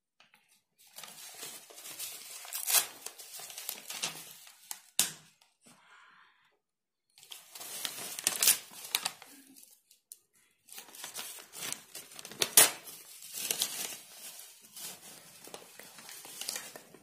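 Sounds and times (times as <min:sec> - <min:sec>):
newspaper rustling and tearing: 0:00.8 - 0:05.0, 0:07.2 - 0:10.0, 0:10.7 - 0:17.0.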